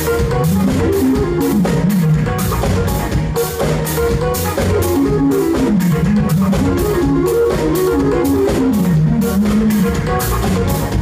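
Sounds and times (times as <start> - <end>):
drums steady beat: 0.0 - 11.0
keyboards: 0.0 - 11.0
live band playing: 0.0 - 11.0.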